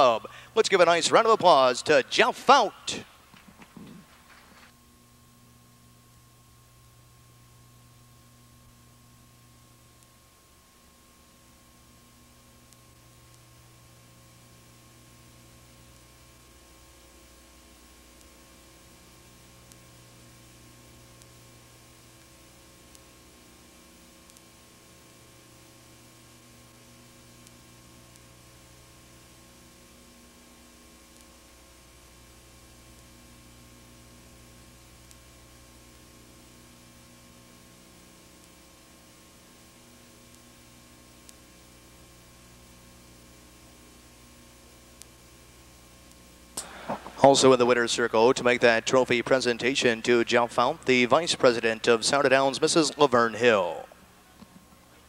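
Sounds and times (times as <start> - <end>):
electrical hum with hiss: 0.0 - 55.0
faint ticks: 12.6 - 13.5, 17.0 - 18.4, 19.6 - 20.0, 21.0 - 28.4, 30.9 - 31.5, 32.7 - 46.7.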